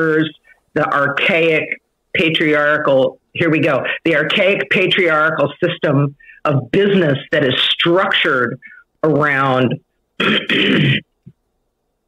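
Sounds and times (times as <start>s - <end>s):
person clearing throat: 10.2s - 11.2s.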